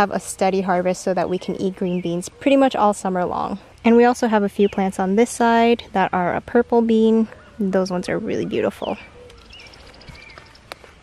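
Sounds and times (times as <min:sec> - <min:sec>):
faint birdsong trill: 0:00.2 - 0:11.0.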